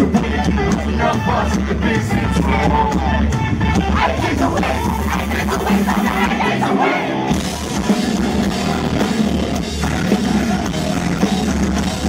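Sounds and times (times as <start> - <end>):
bass guitar: 0.0 - 12.0
drums: 0.0 - 12.0
sung or shouted vocals: 0.0 - 12.0.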